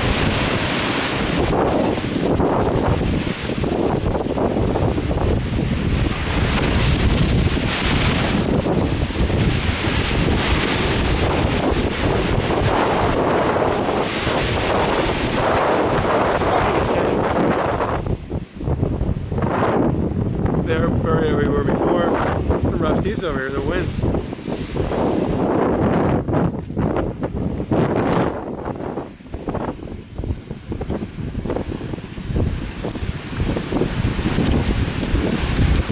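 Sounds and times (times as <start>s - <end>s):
rough sea surging in rock hole: 0.0s - 35.9s
surf breaking on shore: 0.0s - 35.9s
wind buffeting microphone: 0.0s - 35.9s.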